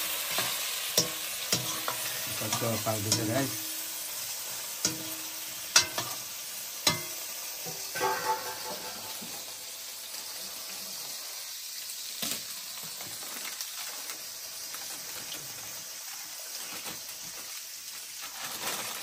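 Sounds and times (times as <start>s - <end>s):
potatoes sizzling in hot oil: 0.0s - 19.0s
metal spatula knocking on pan: 4.8s - 5.2s, 6.9s - 9.5s.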